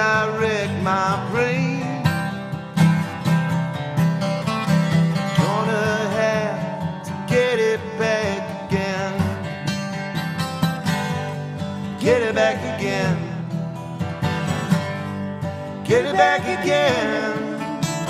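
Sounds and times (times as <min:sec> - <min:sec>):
man singing: 0:00.0 - 0:02.3, 0:05.4 - 0:09.5, 0:12.0 - 0:13.6, 0:15.8 - 0:18.0
acoustic guitars strummed: 0:00.0 - 0:18.0.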